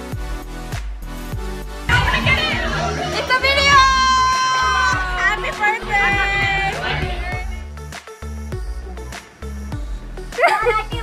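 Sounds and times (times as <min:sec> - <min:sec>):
background music: 0:00.0 - 0:11.0
young women shouting and squealing: 0:01.9 - 0:07.6.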